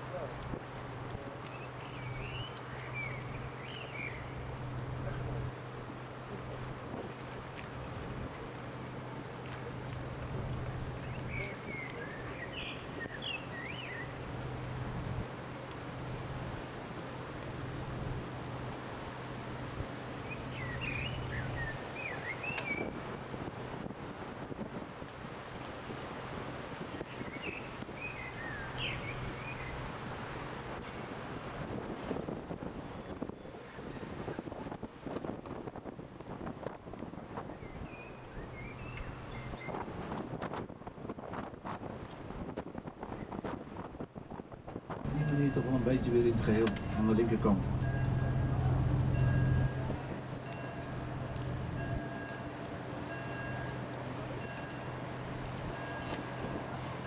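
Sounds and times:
wind on microphone: 0.0s - 15.4s, 19.5s - 57.0s
boat engine humming: 0.0s - 43.1s, 43.7s - 57.0s
bird chirps: 1.5s - 4.3s, 20.3s - 22.9s, 27.2s - 29.7s.

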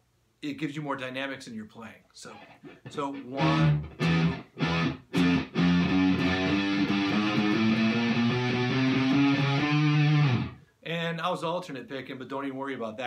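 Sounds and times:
electric guitar single picked notes: 2.8s - 10.6s.

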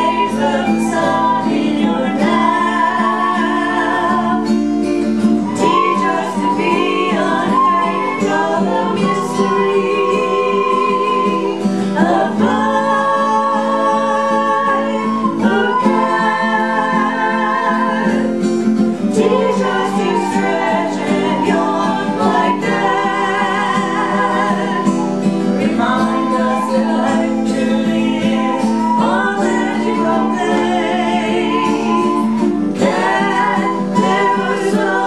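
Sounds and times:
group singing long notes: 0.0s - 35.0s
strummed acoustic guitars: 0.0s - 35.0s
recorder playing: 5.5s - 9.4s, 23.9s - 35.0s.

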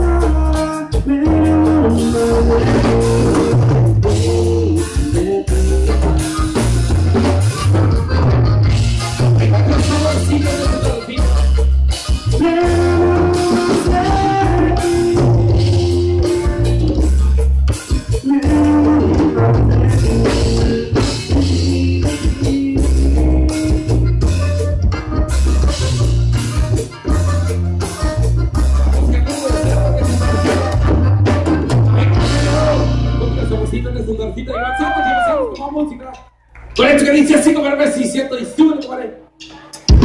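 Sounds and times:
button accordion melody: 0.0s - 34.0s
drum kit: 0.0s - 36.0s, 39.4s - 40.0s
electric bass: 0.0s - 36.8s, 39.8s - 40.0s
congas: 0.0s - 37.6s
guitar: 0.0s - 40.0s.

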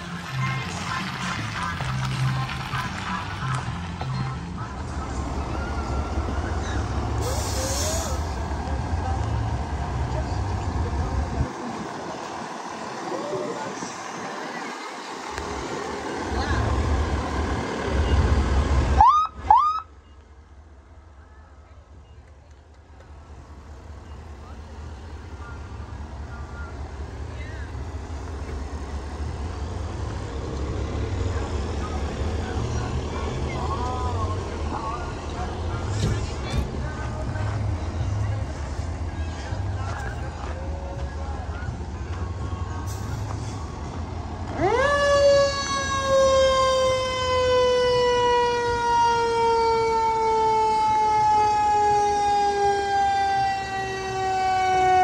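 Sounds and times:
heavy vehicle engines rumbling: 0.0s - 55.0s
short burst of hiss: 7.2s - 8.3s
rising and falling siren tones: 44.5s - 55.0s.

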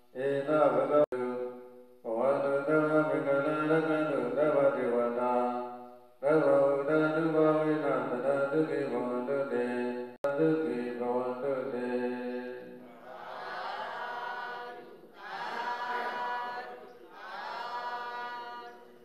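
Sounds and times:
prayer chanting: 0.1s - 19.0s.

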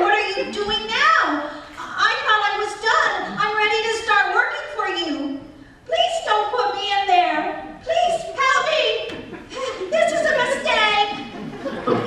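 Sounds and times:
woman speaking: 0.0s - 11.3s.

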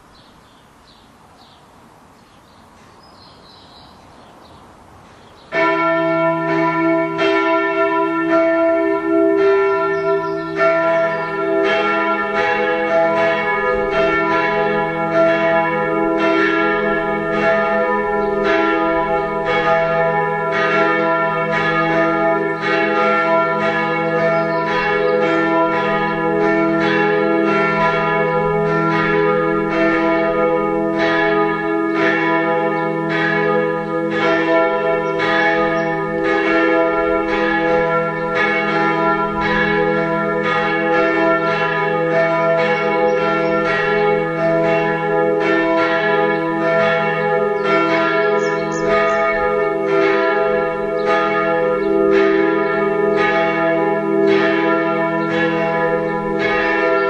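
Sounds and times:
church bells ringing: 2.8s - 57.0s.

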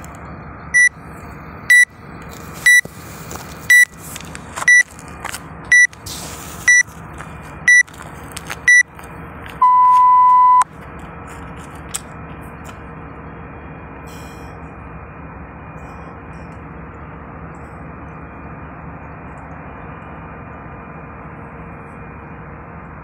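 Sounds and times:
long lower beep: 0.7s - 1.0s, 1.7s - 1.9s, 3.7s - 3.9s, 9.6s - 10.7s
short high beeps: 1.7s - 1.9s, 3.7s - 3.9s, 5.7s - 5.9s, 9.6s - 10.7s.

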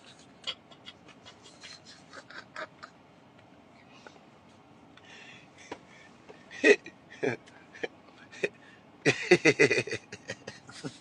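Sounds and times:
man laughing in squeaky wheezes: 0.0s - 3.0s, 9.1s - 11.0s.

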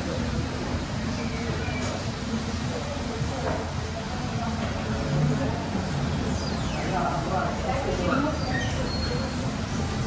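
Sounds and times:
distant voices murmuring: 0.0s - 10.0s.

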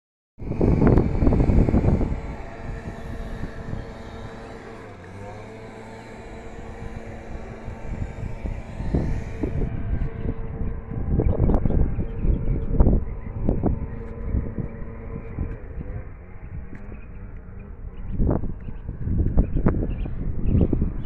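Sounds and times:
engine drone: 0.4s - 21.0s
wind buffeting microphone: 0.4s - 21.0s.

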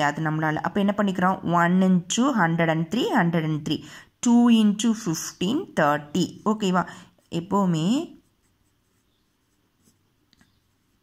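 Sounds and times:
pencil writing on paper: 6.3s - 11.0s.

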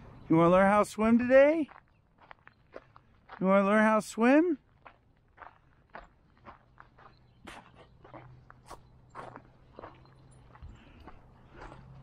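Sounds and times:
footsteps crunching on gravel: 0.8s - 12.0s.

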